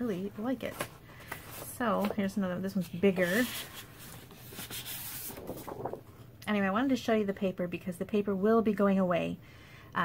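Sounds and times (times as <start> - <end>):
paper rustling against plastic: 0.4 - 6.2.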